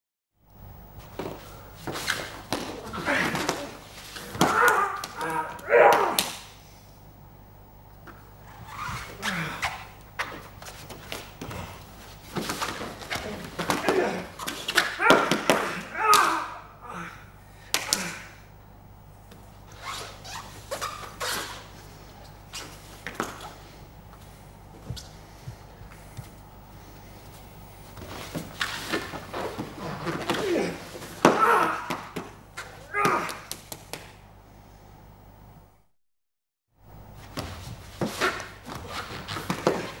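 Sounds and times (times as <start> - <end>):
grunts and breaths: 9.1 - 9.9.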